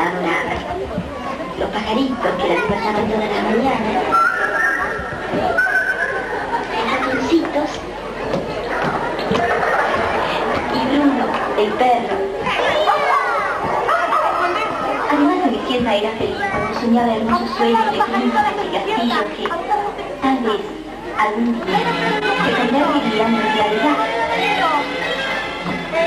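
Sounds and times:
children and audience chattering: 0:00.0 - 0:26.0
thin high whistle-like tone: 0:04.1 - 0:04.8, 0:05.5 - 0:06.2.

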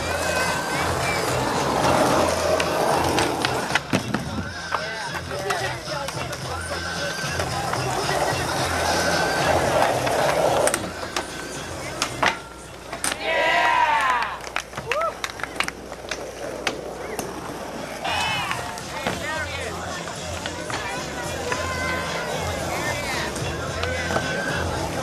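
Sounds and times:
skateboard clacking on ground: 0:00.0 - 0:25.0
skateboard wheels rolling on asphalt: 0:00.0 - 0:25.0
onlookers shouting: 0:13.1 - 0:15.2.

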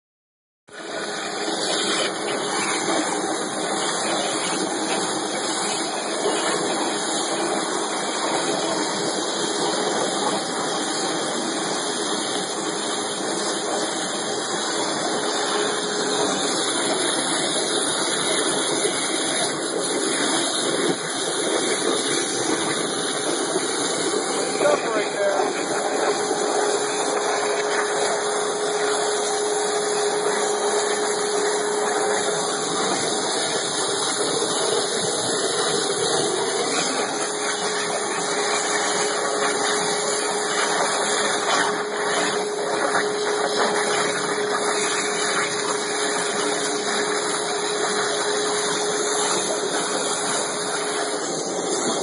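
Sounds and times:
waterjet hiss and rush: 0:00.7 - 0:52.0.

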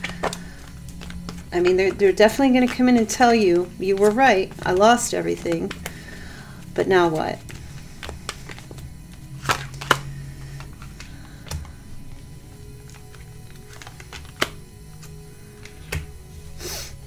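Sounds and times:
cards clicking and snapping: 0:00.0 - 0:16.1
soft background music: 0:00.0 - 0:17.0.

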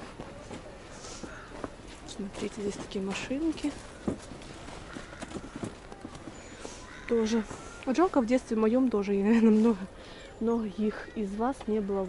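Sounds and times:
footsteps crunching in snow: 0:00.0 - 0:08.2.

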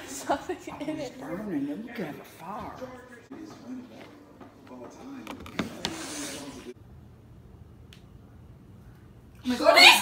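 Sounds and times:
woman exclaiming: 0:09.4 - 0:10.0.

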